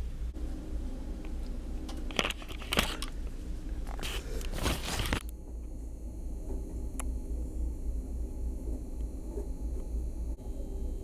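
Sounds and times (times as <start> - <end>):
plastic wrapping crinkling: 4.0 - 5.2.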